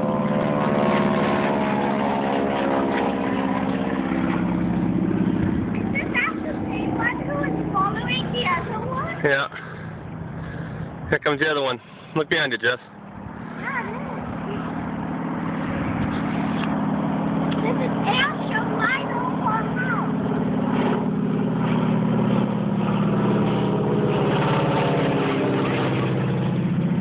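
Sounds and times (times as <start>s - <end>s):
propeller plane engine drone: 0.0s - 27.0s.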